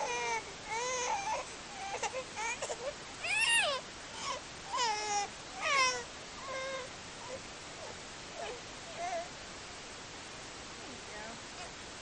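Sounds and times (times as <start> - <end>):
infant squealing and whining: 0.0 - 9.3.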